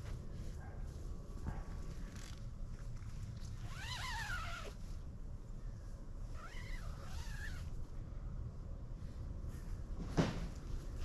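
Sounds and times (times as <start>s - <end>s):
steady low rumble: 7.6s - 11.0s.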